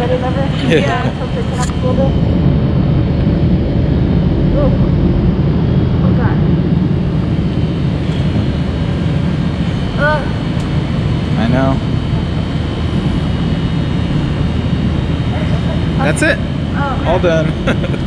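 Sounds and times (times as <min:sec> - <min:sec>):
faint high whine: 0:00.0 - 0:18.0
low rumble: 0:00.0 - 0:18.0.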